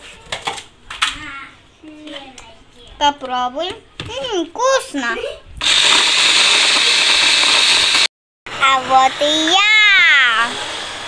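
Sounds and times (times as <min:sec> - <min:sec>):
electric blender whirring: 0:05.6 - 0:11.0.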